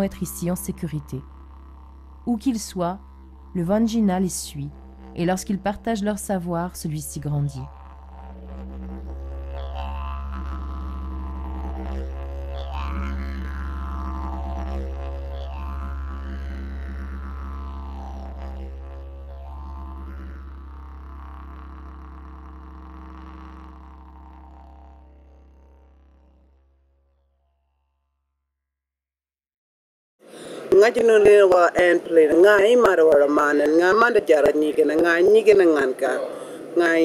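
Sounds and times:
didgeridoo drone: 0.0 - 28.0.

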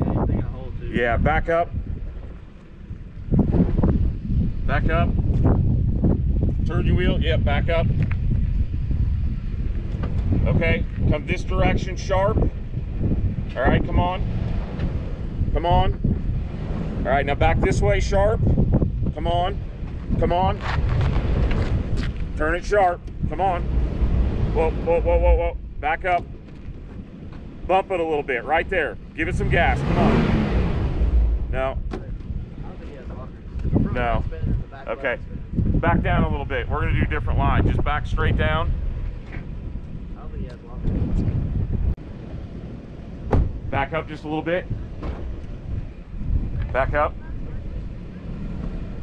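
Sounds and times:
vehicle engine rumble: 0.0 - 49.0
wind buffeting microphone: 0.0 - 49.0.

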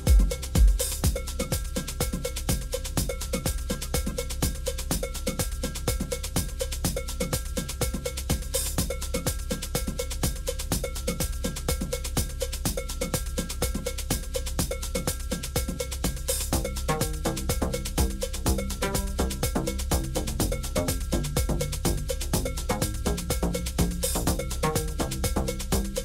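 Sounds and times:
techno music: 0.0 - 1.1, 16.5 - 26.0
cowbell-like percussion: 0.0 - 26.0
kick drum: 0.0 - 26.0.

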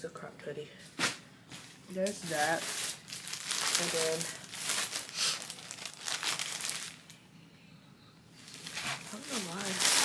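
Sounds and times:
packaging crinkling: 2.1 - 7.2, 8.4 - 10.0.

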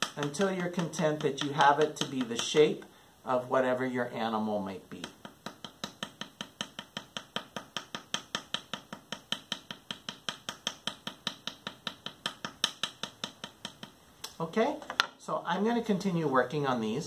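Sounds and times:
wooden paddle tapping clay: 0.0 - 2.9, 5.0 - 15.2.

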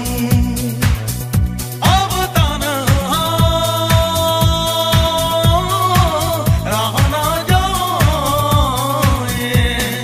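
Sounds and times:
person singing: 0.0 - 1.2, 1.8 - 10.0
dance beat: 0.2 - 10.0.

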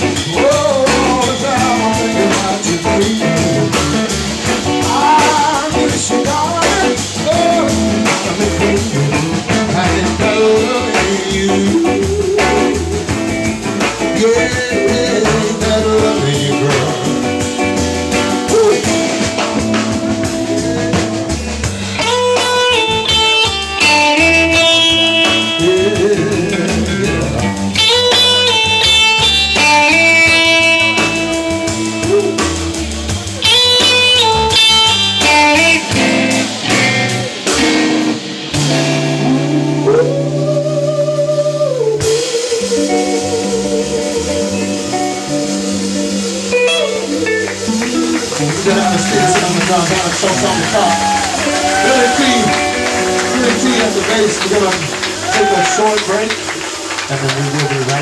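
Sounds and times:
bass guitar: 0.0 - 58.0
drum kit: 0.0 - 58.0
electric guitar lead solo: 16.0 - 58.0.

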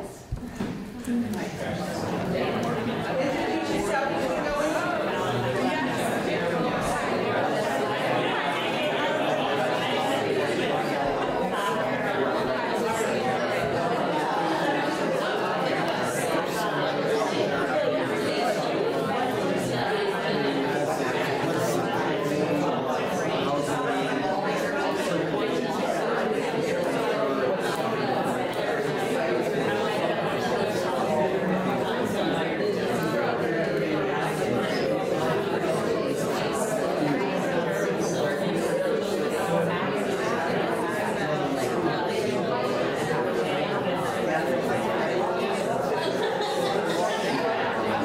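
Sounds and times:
crowd chatter: 0.0 - 48.0
hubbub of people talking: 0.0 - 48.0.

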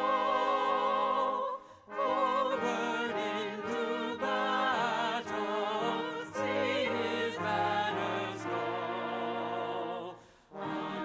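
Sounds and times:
voices singing with vibrato: 0.0 - 11.0.

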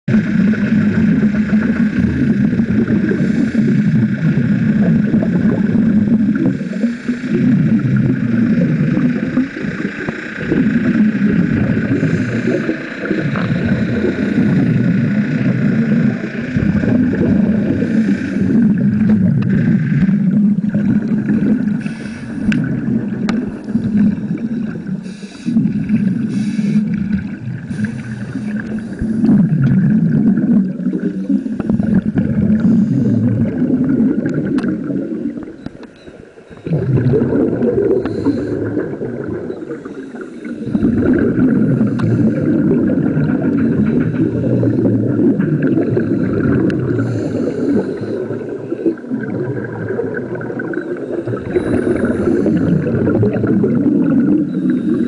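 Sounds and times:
underwater regulator bubbles: 0.0 - 55.0.

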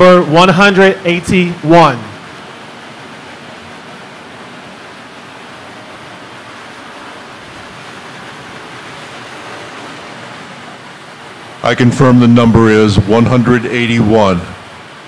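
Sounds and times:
room background hiss: 0.0 - 15.0.

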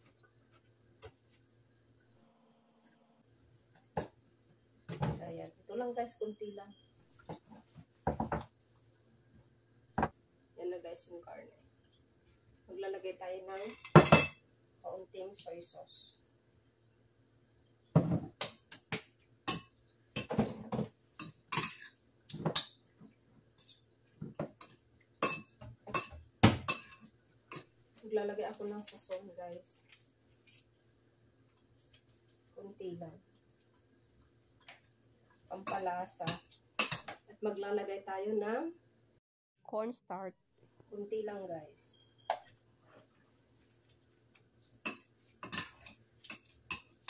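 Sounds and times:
spoon stirring meat in a bowl: 44.3 - 47.0.

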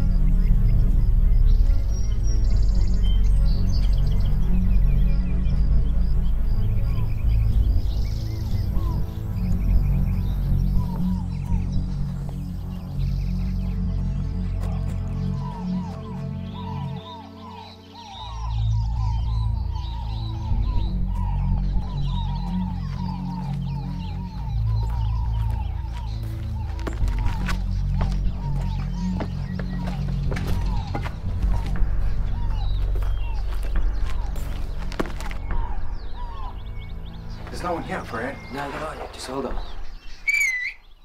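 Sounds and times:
film score with low bass: 0.0 - 41.0.

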